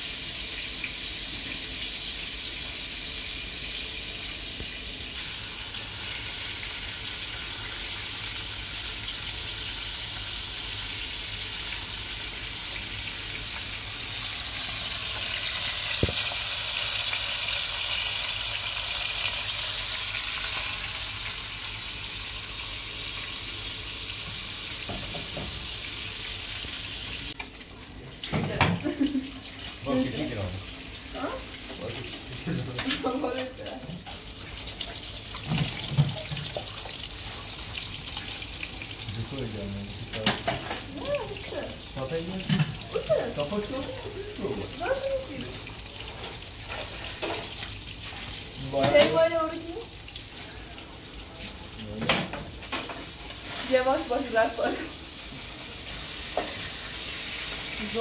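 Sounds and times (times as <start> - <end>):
running tap: 0.0 - 21.9, 23.2 - 54.9
food frying in oil: 0.0 - 58.0.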